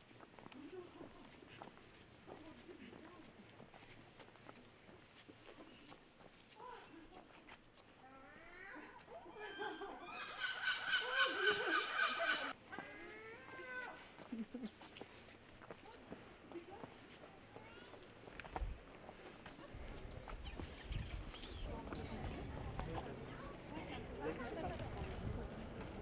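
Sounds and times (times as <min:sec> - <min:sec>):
wavering animal call: 0:09.3 - 0:14.0.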